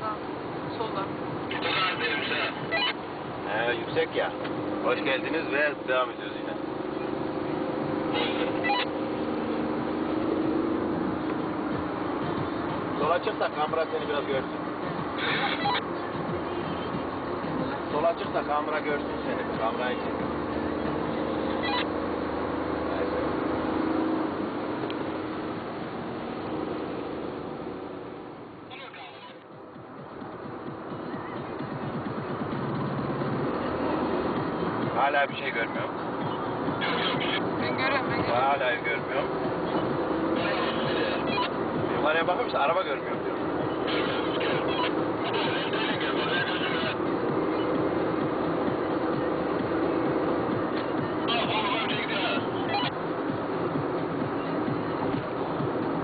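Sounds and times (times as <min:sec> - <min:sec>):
car engine hum: 0:00.0 - 0:56.0
road noise inside car: 0:00.0 - 0:56.0.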